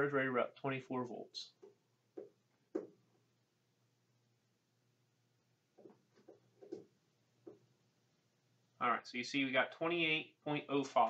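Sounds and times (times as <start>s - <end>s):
faint low hum: 0.0s - 11.0s
soft knocks: 1.6s - 3.0s.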